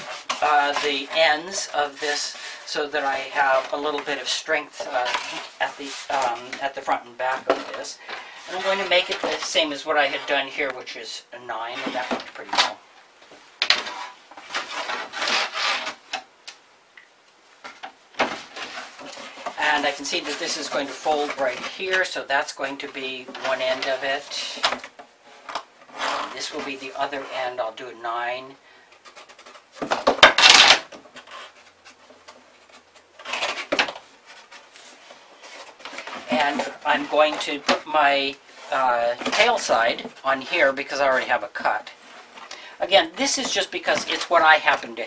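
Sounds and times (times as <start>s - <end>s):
cardboard scraping on wood: 0.0s - 10.6s, 13.8s - 16.2s, 18.2s - 22.2s, 23.2s - 27.4s, 29.0s - 42.4s.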